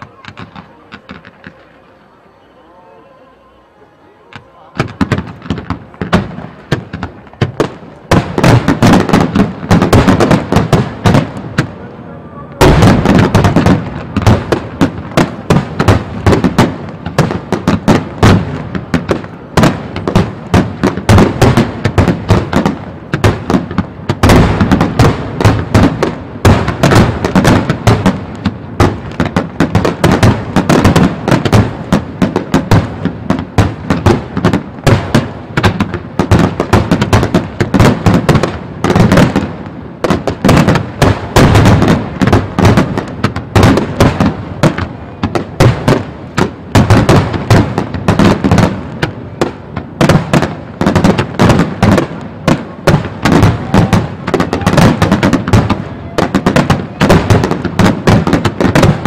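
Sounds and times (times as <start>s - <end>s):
fireworks bursting: 0.0s - 59.0s.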